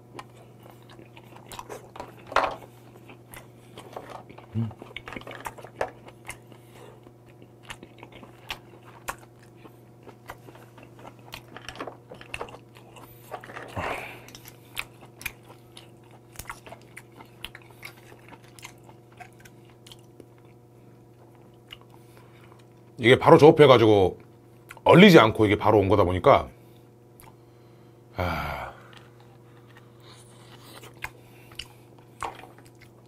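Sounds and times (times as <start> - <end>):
chewing with wet mouth clicks: 0.1 - 13.2, 14.2 - 23.0, 26.8 - 27.4, 28.9 - 33.0.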